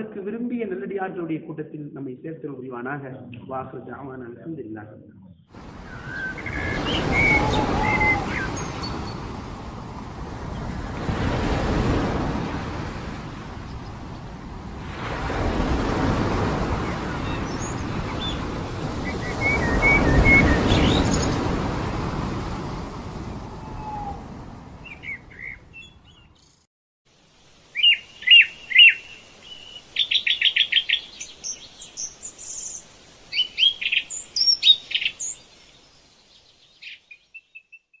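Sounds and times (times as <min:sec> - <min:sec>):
birds chirping and trilling: 0:05.4 - 0:09.3, 0:16.8 - 0:21.5, 0:23.3 - 0:24.2, 0:24.8 - 0:26.6, 0:27.7 - 0:38.0
broad rushing noise: 0:05.5 - 0:24.8.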